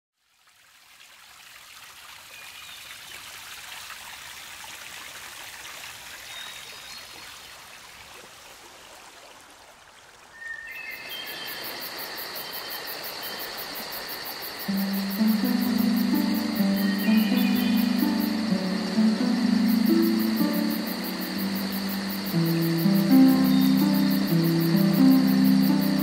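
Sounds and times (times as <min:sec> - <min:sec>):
trickling running water: 0:00.2 - 0:10.4, 0:11.2 - 0:26.0
high-pitched trilling tones: 0:14.7 - 0:26.0.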